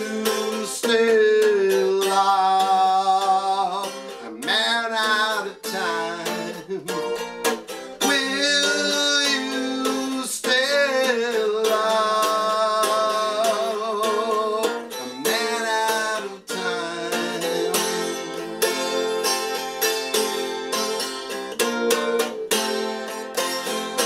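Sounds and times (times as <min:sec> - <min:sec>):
man singing: 0:00.0 - 0:20.5
strummed steel-string chords: 0:00.0 - 0:24.0.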